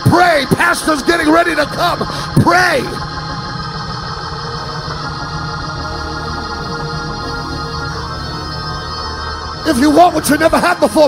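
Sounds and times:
organ-like worship chords: 0:00.0 - 0:11.0.

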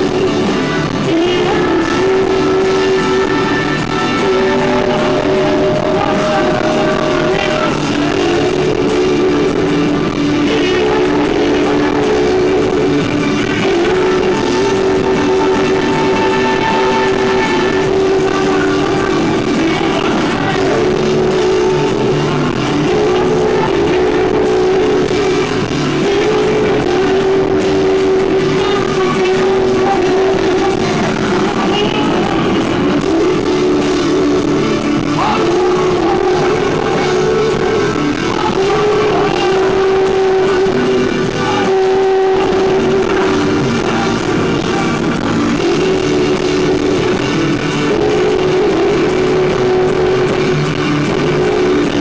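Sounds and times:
live band performing: 0:00.0 - 0:52.0
man singing: 0:00.0 - 0:52.0.

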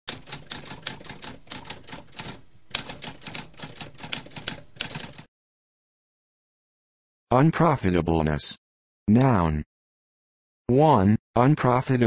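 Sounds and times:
typewriter typing: 0:00.1 - 0:05.3.

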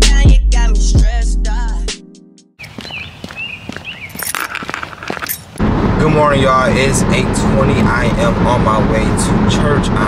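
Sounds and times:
birds chirping: 0:02.6 - 0:05.6
dress shoes on concrete: 0:02.6 - 0:05.6.

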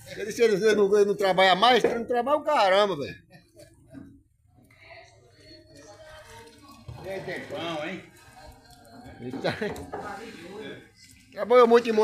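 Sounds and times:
wooden paddle stirring thick syrup: 0:05.7 - 0:12.0.

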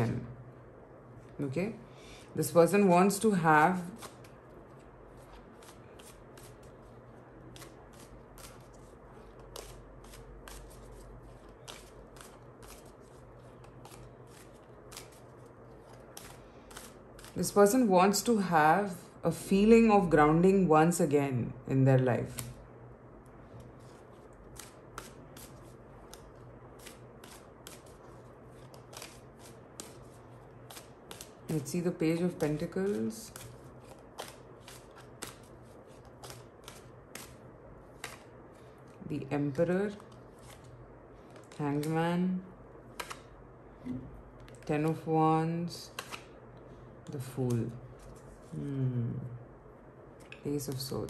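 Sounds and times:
cards being shuffled: 0:03.8 - 0:17.5, 0:23.6 - 0:38.7, 0:39.9 - 0:42.0, 0:42.9 - 0:43.3, 0:45.9 - 0:46.3.

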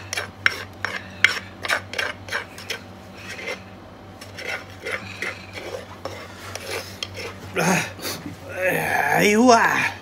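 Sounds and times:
utensil scraping earthenware mortar: 0:00.0 - 0:08.0.

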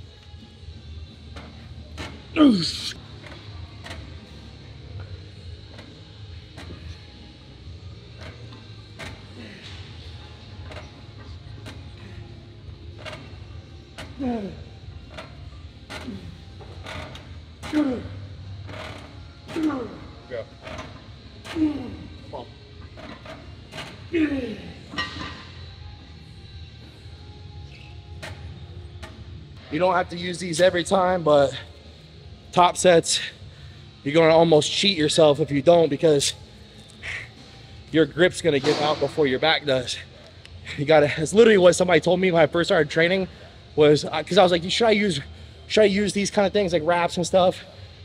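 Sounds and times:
man grunting: 0:02.4 - 0:03.0.

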